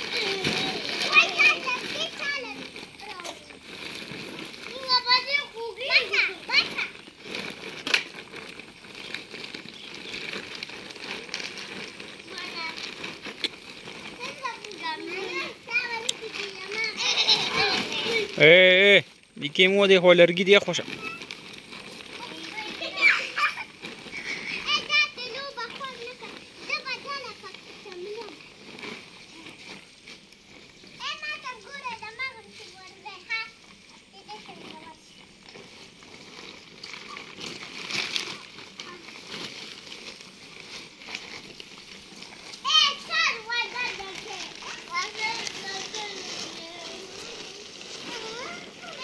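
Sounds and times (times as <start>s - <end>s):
children chattering: 0.0s - 7.6s, 8.4s - 18.6s, 20.6s - 35.4s, 36.0s - 49.0s
children shrill calls: 22.4s - 23.6s, 42.6s - 47.4s.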